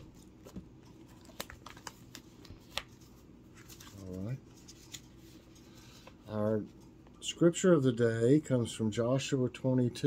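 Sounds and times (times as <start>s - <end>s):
paper rustling and flicking: 0.2s - 6.2s.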